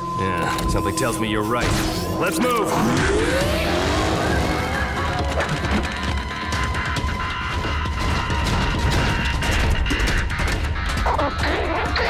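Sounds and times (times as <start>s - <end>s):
action background music: 0.0s - 12.0s.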